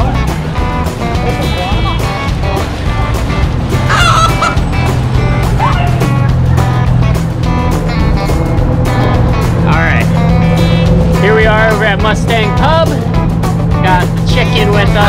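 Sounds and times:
music with a steady beat: 0.0s - 15.0s.

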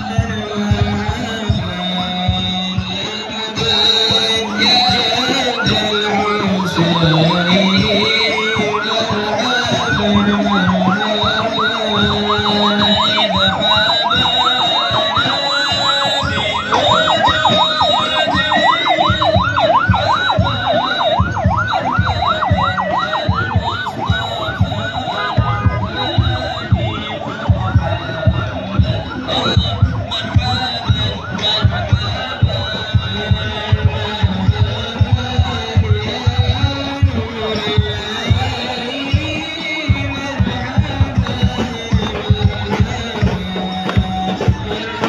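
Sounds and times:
electronic siren yelping: 2.8s - 45.0s.

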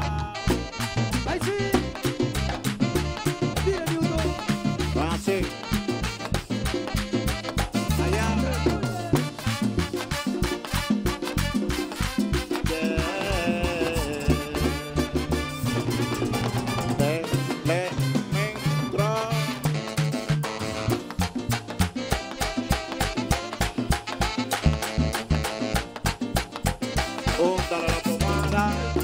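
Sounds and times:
brass riffs: 0.0s - 29.0s
fast percussion and bass beat: 0.0s - 29.0s.

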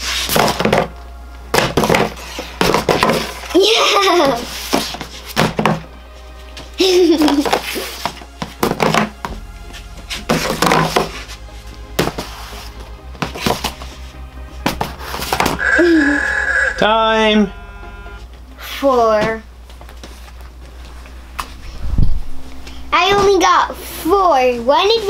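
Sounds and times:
inflatable glove thudding boxes: 0.0s - 5.9s, 7.0s - 14.0s
background music: 0.0s - 19.6s, 20.4s - 25.0s.

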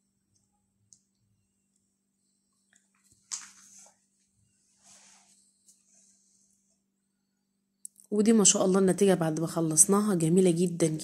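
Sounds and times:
low steady hum: 0.0s - 11.0s.

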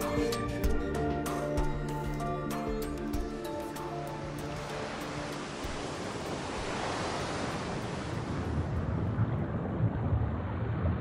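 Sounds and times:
low rumble: 8.3s - 11.0s.

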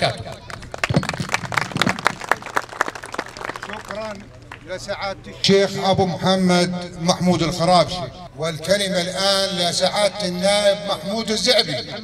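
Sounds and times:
audience applauding: 0.4s - 4.6s.

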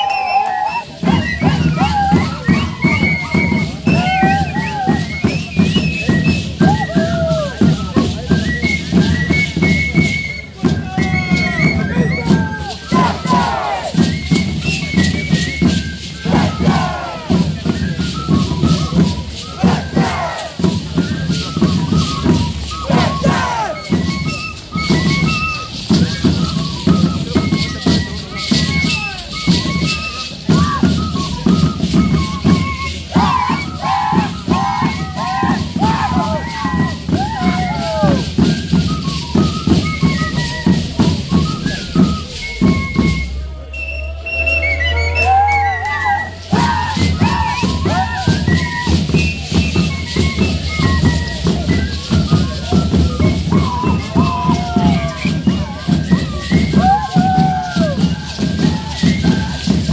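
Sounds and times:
voices shouting: 10.8s - 14.0s, 16.2s - 17.5s, 19.4s - 20.7s, 22.8s - 23.9s, 33.0s - 38.3s, 43.9s - 49.0s, 53.4s - 55.9s.

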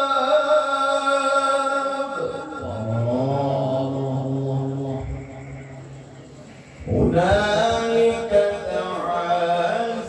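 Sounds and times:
man reciting into a microphone: 0.0s - 6.0s, 6.7s - 10.0s.

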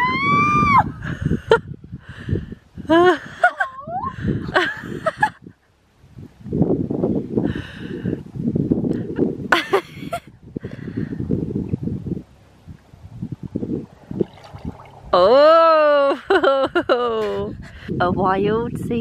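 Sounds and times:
water splashing in a bath: 13.9s - 15.2s.

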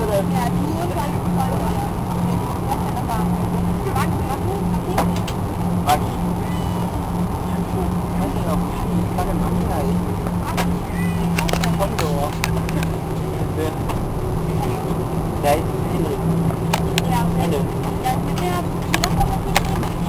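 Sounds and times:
aircraft cabin drone: 0.0s - 20.0s.

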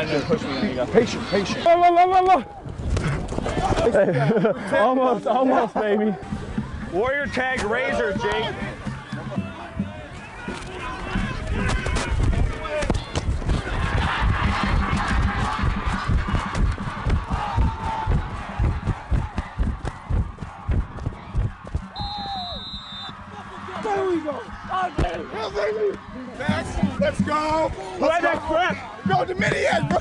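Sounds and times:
crowd cheering: 3.4s - 30.0s
running footsteps: 8.1s - 30.0s.

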